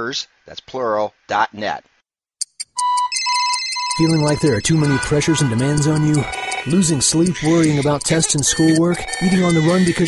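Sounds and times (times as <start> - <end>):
electronic ringtone: 2.4 - 10.0
repeating beep: 2.4 - 10.0
steady high ringing tones: 2.5 - 10.0.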